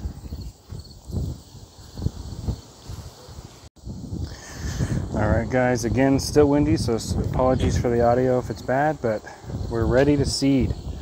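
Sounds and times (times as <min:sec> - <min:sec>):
faint insect chirps: 0:00.0 - 0:11.0
wind buffeting microphone: 0:00.0 - 0:11.0.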